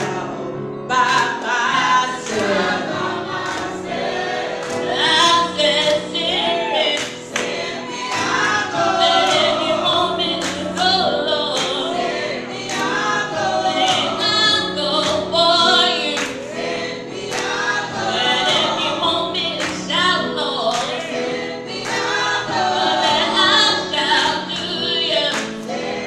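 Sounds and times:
vocal group singing gospel: 0.0s - 26.0s.

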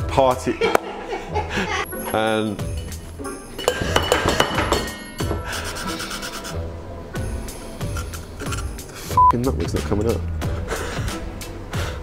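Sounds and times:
background music: 0.0s - 12.0s
bar tools clicking and knocking: 3.6s - 5.4s.

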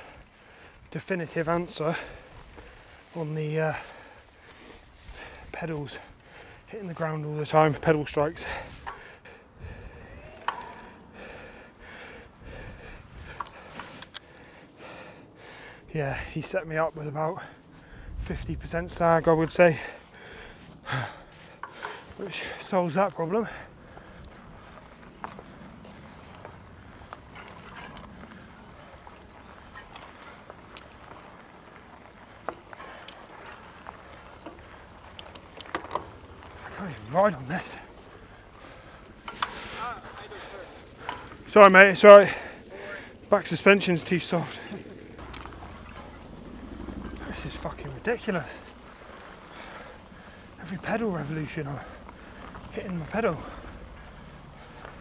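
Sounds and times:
bike rustling in dry grass: 0.0s - 55.0s
sharp bike clicks: 23.3s - 41.6s, 43.6s - 55.0s.

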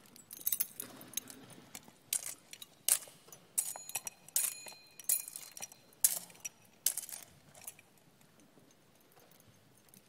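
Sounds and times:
censer chains clinking: 0.0s - 8.1s.

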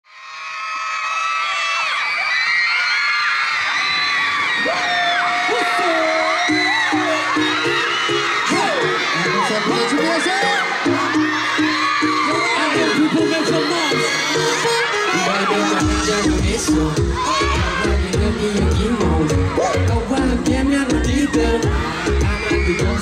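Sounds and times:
crowd screaming and cheering: 0.0s - 23.0s
backing track with pulsing bass: 5.6s - 23.0s.

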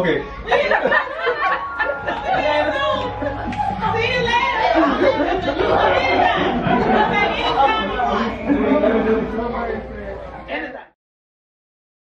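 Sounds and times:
overlapping indistinct chatter: 0.0s - 11.0s.

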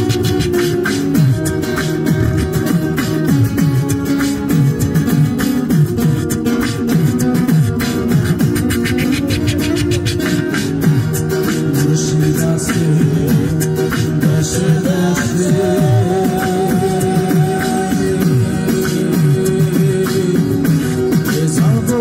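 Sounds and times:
acoustic guitar playing: 0.0s - 22.0s
steady percussive beat: 0.0s - 22.0s.

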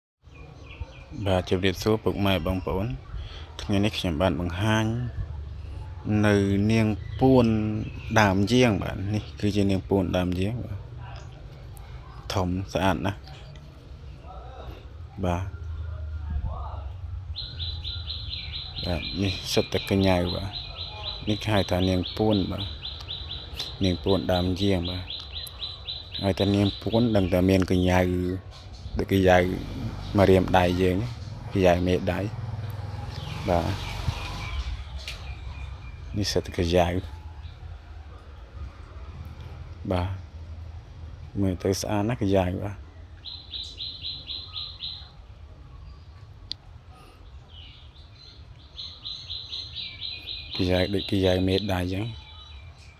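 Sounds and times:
bird chirping rapidly: 17.1s - 37.8s, 39.8s - 45.2s, 45.8s - 52.9s.

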